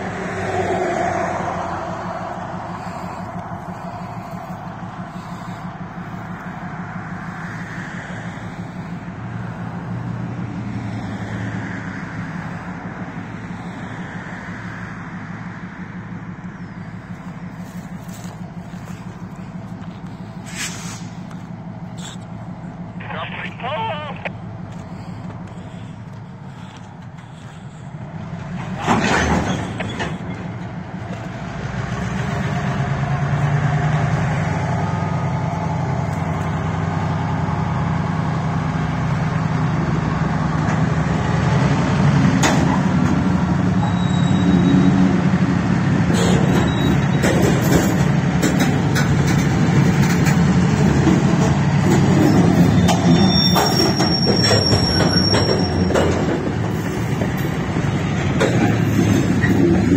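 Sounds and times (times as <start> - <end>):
diesel locomotive drone: 0.0 - 59.9
train wheels clicking and knocking: 46.1 - 59.9.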